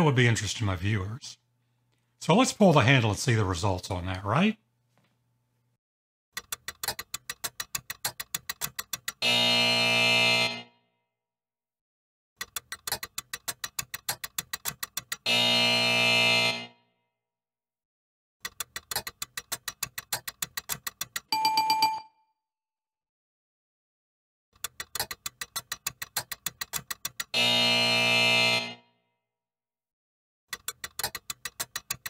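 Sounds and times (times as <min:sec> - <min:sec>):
low buzzer: 0:09.2 - 0:10.9, 0:15.2 - 0:17.0, 0:27.3 - 0:29.1
bright ringing ding: 0:21.4 - 0:22.2.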